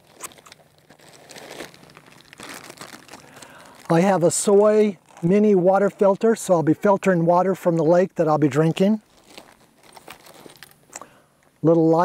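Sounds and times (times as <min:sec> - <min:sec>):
plastic bag crinkling: 0:00.0 - 0:06.5, 0:08.8 - 0:10.9.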